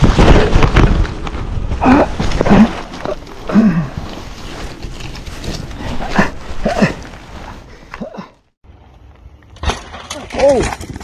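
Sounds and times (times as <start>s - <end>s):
rustling: 0.0s - 8.0s.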